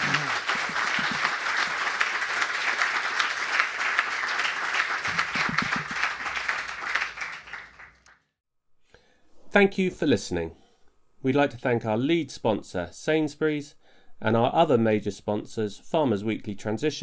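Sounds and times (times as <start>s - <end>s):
audience applauding: 0.0s - 8.2s.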